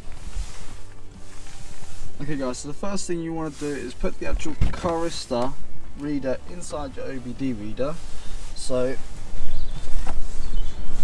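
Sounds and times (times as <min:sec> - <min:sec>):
background music: 0:00.0 - 0:11.0
steady hiss: 0:00.0 - 0:11.0.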